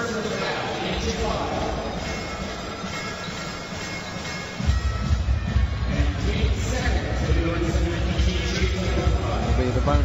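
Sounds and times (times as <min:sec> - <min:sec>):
crowd noise: 0:00.0 - 0:10.0
arena music with bass beat: 0:01.1 - 0:10.0.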